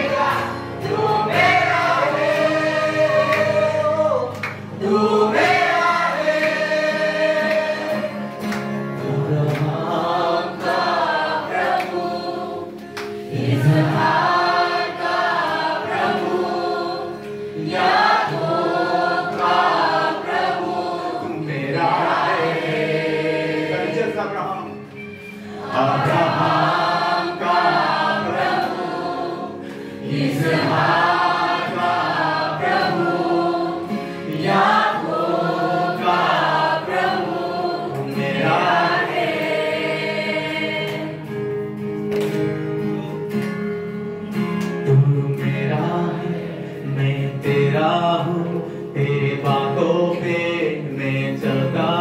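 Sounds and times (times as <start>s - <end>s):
choir singing worship song: 0.0s - 41.9s, 44.2s - 52.0s.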